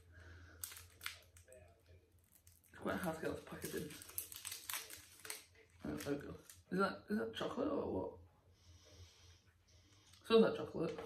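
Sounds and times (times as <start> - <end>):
waxed-paper wrapper crinkling: 0.4 - 6.7.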